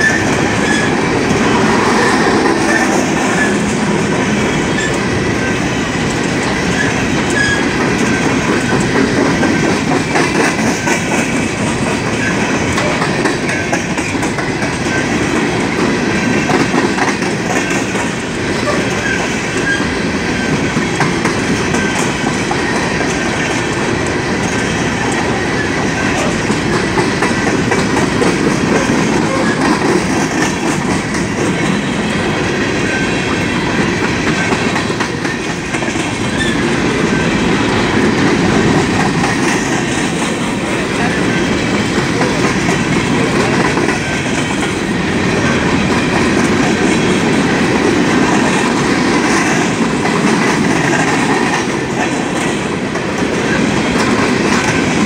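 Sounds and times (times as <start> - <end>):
train wheels rolling on rails: 0.0 - 55.0.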